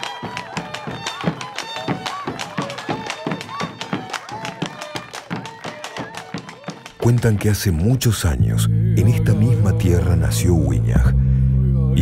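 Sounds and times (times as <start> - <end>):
fiddles playing folk music: 0.0 - 7.5
voices: 0.0 - 12.0.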